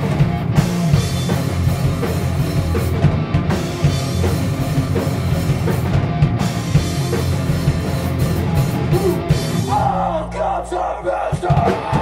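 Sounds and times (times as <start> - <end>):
electric guitars: 0.0 - 10.4
bass guitar: 0.0 - 12.0
driving drum kit: 0.0 - 12.0
punk rock band playing live: 0.0 - 12.0.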